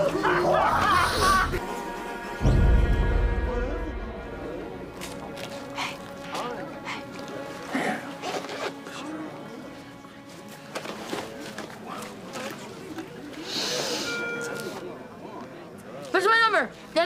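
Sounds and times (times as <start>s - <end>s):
background music: 0.0s - 15.7s
indistinct chatter: 0.0s - 17.0s.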